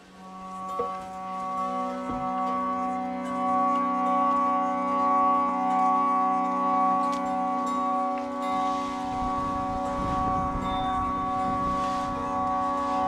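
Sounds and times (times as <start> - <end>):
harmonium drone: 0.0 - 13.0.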